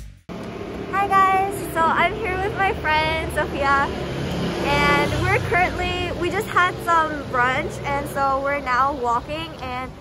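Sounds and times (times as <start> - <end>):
low steady rumble: 0.3 - 4.0
woman talking: 0.9 - 4.0, 4.6 - 10.0.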